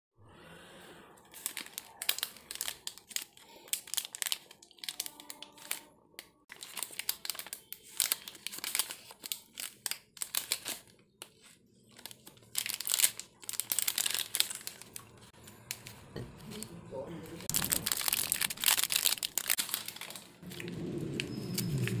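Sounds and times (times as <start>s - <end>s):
plastic wrapper crinkling: 1.2s - 22.0s.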